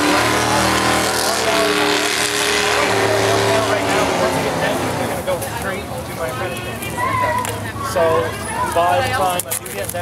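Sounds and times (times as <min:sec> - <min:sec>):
engine running: 0:00.0 - 0:06.3.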